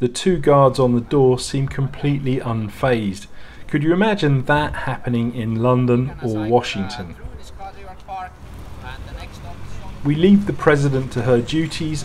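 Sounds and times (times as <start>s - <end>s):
low outdoor rumble: 0.0s - 12.0s
people talking: 0.0s - 12.0s.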